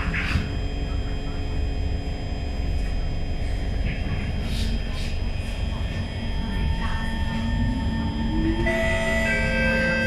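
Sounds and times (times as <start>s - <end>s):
train running rumble: 0.0s - 10.0s
train motors whining: 7.6s - 10.0s.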